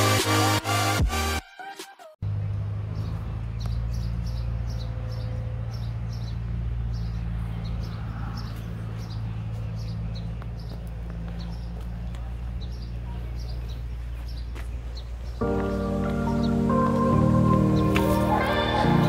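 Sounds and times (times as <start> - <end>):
electronic music: 0.0 - 2.2, 15.4 - 19.0.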